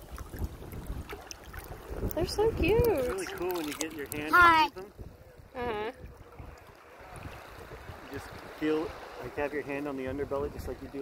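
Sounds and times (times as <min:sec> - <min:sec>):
seawater lapping and sloshing: 0:00.0 - 0:11.0
wind buffeting microphone: 0:00.0 - 0:11.0.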